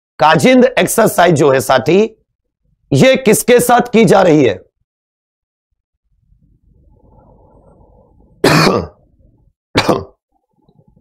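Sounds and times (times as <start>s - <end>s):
man coughing: 8.4s - 9.0s, 9.8s - 10.2s.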